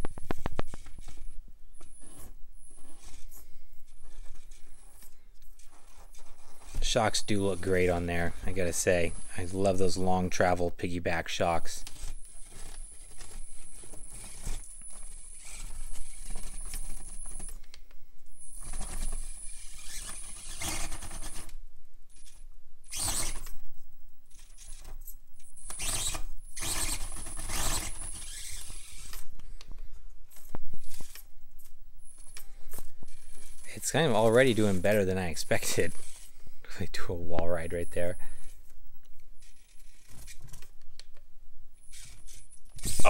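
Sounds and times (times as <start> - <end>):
tyres scraping on rock: 25.8 - 29.3, 32.2 - 36.4.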